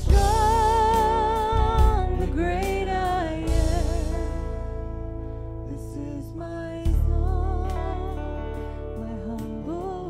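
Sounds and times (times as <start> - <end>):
low bass: 0.0 - 10.0
person singing with vibrato: 0.0 - 10.0.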